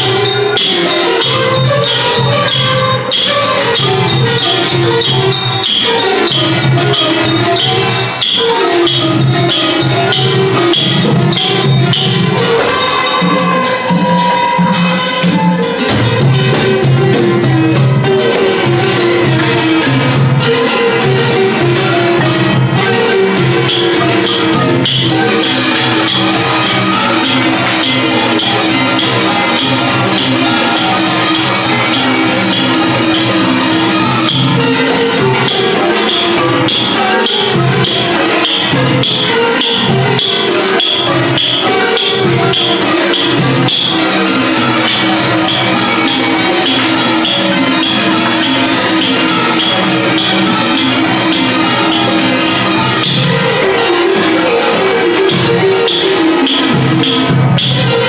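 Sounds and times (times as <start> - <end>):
drums tapping beat: 0.0 - 58.0
hammered dulcimers and xylophones: 0.0 - 58.0.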